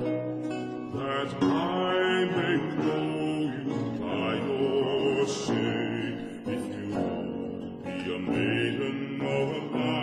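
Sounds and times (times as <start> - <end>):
lute playing plucked notes: 0.0 - 10.0.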